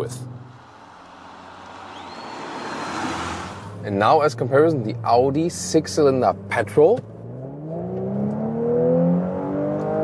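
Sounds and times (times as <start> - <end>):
road and wind noise in a car: 0.0 - 10.0.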